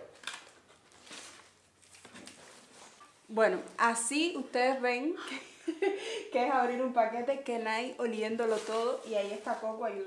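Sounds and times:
packaging rustling: 0.0s - 3.2s, 8.2s - 10.0s.

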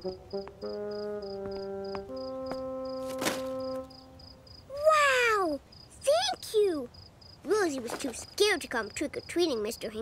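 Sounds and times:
held music chord: 0.0s - 4.5s
crickets chirping: 0.0s - 10.0s.

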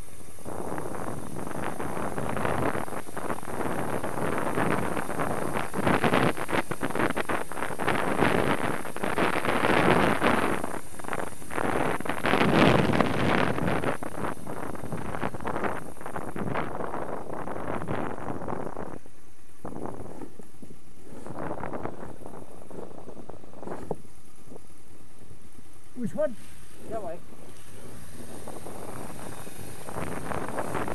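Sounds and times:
motorcycle engine running: 0.0s - 30.9s
wind buffeting microphone: 0.0s - 30.9s.

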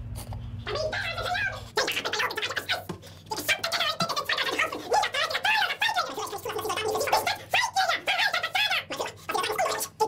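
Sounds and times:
pitch-shifted squeaky male voice: 0.6s - 10.0s.

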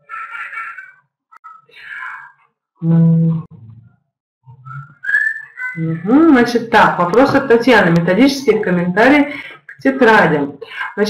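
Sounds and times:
high whistle-like tone: 4.5s - 5.8s.

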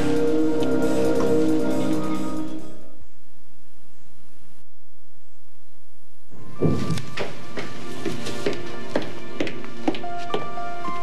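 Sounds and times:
music with sustained held notes: 0.0s - 3.2s, 6.4s - 11.0s.

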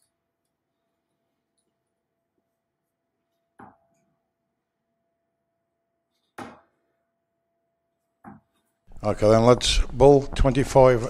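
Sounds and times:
darts thudding into dartboard: 6.4s - 6.8s.

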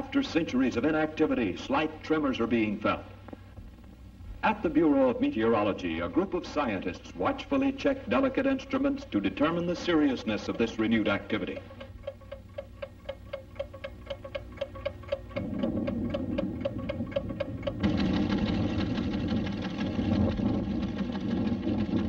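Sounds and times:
mechanical ticking: 0.0s - 22.0s
low orchestral drone: 15.3s - 21.2s.

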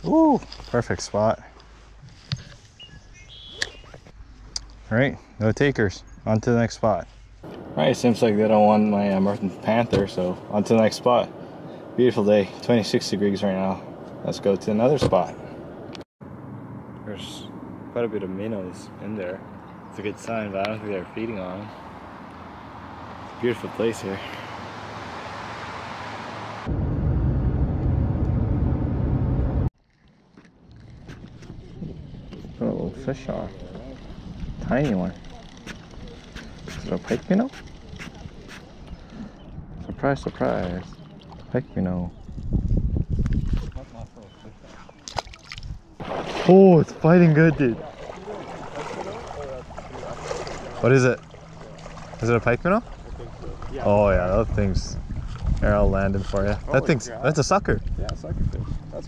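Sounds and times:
birds chirping: 2.2s - 26.6s, 31.3s - 46.0s, 47.0s - 57.1s
wind buffeting microphone: 30.9s - 46.0s, 46.9s - 59.0s.

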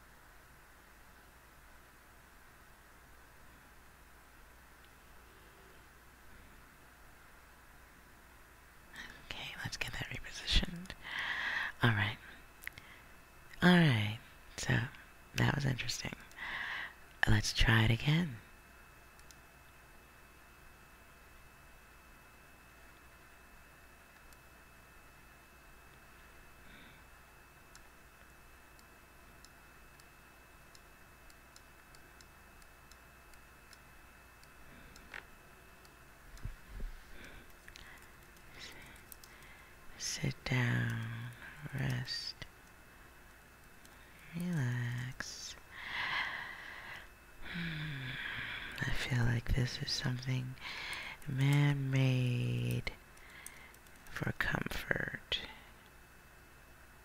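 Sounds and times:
man whispering: 9.0s - 11.0s, 11.7s - 12.4s, 17.2s - 18.4s, 39.9s - 42.4s, 44.2s - 45.6s, 48.8s - 50.6s, 51.2s - 53.0s, 54.1s - 55.7s
breathy mouth clicks: 37.4s - 39.5s
computer keyboard typing: 37.5s - 39.6s, 53.2s - 54.2s.

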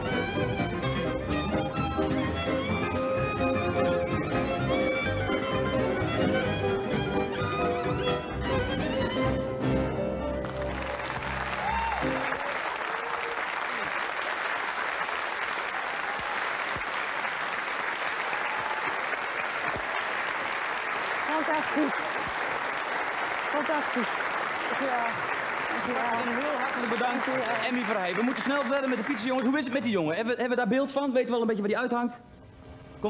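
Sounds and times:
guitar and violin music: 0.0s - 12.4s
audience applauding: 10.2s - 30.0s.

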